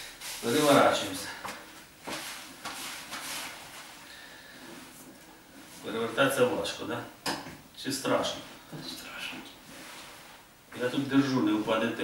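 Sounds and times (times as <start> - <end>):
cloth wiping across skin: 2.0 - 4.1.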